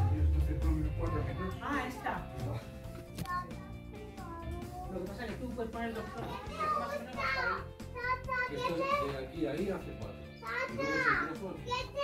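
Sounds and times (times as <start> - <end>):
background music: 0.0 - 12.0
children's voices: 3.2 - 4.9, 6.0 - 9.1, 10.4 - 12.0.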